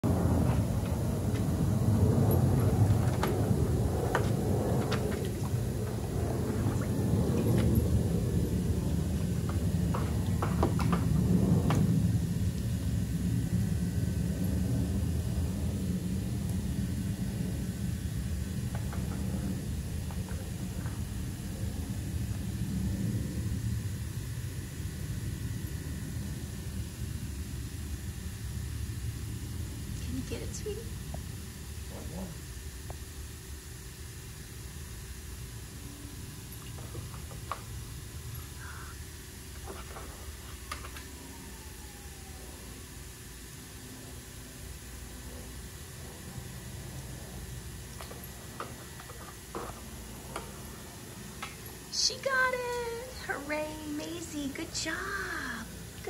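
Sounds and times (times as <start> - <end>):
steady low rumble: 0.0 - 56.0.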